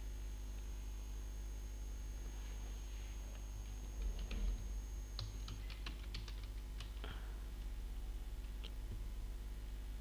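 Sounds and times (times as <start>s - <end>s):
low steady hum: 0.0s - 10.0s
computer keyboard typing: 3.9s - 7.1s.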